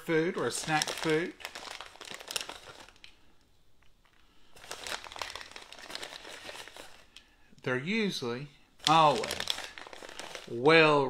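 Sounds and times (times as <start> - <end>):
plastic bag crinkling: 0.0 - 7.4, 8.8 - 10.7.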